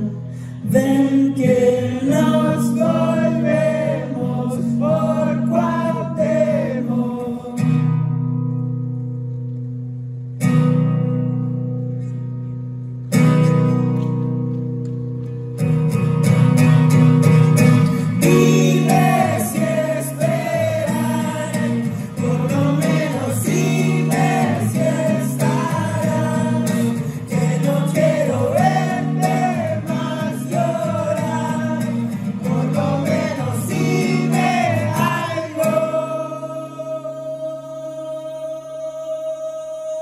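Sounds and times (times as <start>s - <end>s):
man singing: 0.0s - 7.7s, 18.2s - 40.0s
strummed acoustic guitar: 0.0s - 40.0s.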